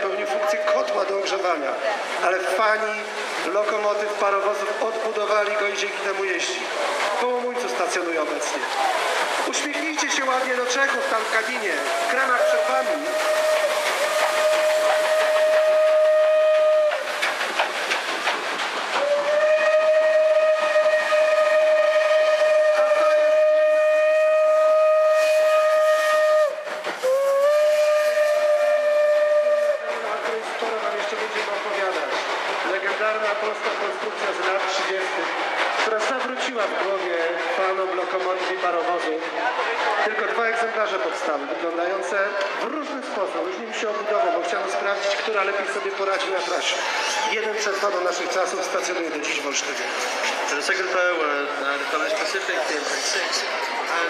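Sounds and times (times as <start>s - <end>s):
steam locomotive whistle: 0.0s - 1.0s, 11.8s - 17.1s, 19.0s - 30.1s
railway noise: 0.0s - 54.0s.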